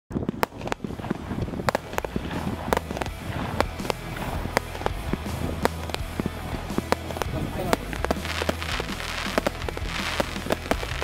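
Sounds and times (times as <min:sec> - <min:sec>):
firework bangs and cracks: 0:00.1 - 0:11.0
firework crackles: 0:00.1 - 0:11.0
steady low rumble: 0:00.1 - 0:11.0.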